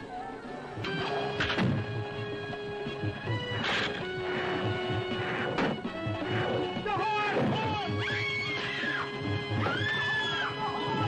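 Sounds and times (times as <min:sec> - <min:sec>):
dramatic film music: 0:00.1 - 0:11.0
woman screaming: 0:07.9 - 0:11.0.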